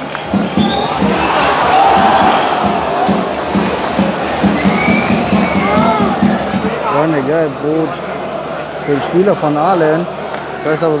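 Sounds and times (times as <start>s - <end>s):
drum beating steady rhythm: 0.0s - 7.8s
crowd chanting in unison: 7.8s - 10.6s.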